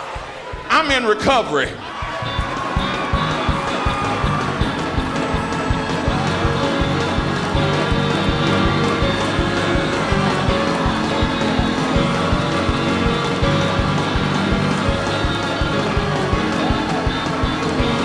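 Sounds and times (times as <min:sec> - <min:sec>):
congregation noise: 0:00.0 - 0:18.0
drums beating: 0:00.0 - 0:18.0
gospel band playing: 0:00.0 - 0:18.0.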